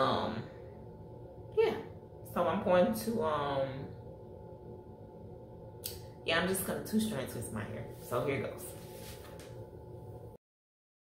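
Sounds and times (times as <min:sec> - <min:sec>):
low room hum: 0:00.0 - 0:10.4.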